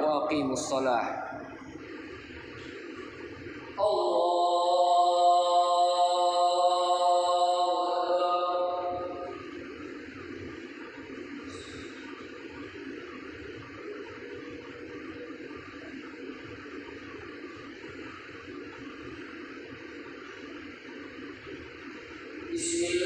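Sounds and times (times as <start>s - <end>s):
steady room hiss: 0.0s - 23.0s.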